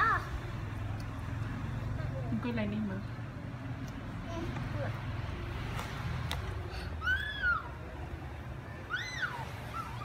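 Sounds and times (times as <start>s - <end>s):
high-pitched cries: 6.8s - 7.9s, 8.8s - 10.0s.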